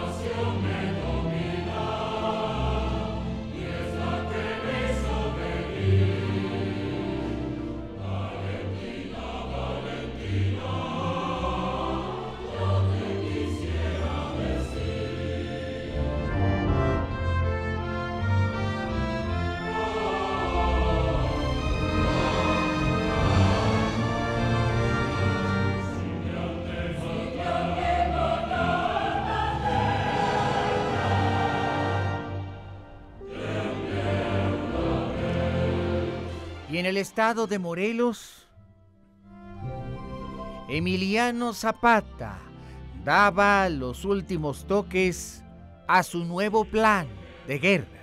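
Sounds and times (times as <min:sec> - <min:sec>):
choir singing held notes: 0:00.0 - 0:17.2, 0:18.2 - 0:37.4
orchestra playing: 0:15.9 - 0:27.2, 0:39.3 - 0:42.4.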